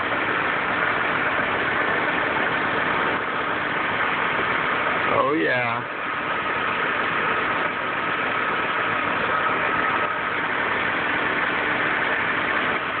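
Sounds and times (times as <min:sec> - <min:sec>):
car engine idling: 0:00.0 - 0:13.0
faint steady whine: 0:00.0 - 0:13.0.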